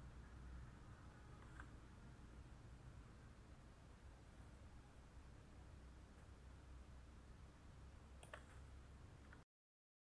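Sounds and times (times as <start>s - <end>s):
low room hum: 0.0s - 9.4s
faint computer clicks: 8.2s - 9.4s.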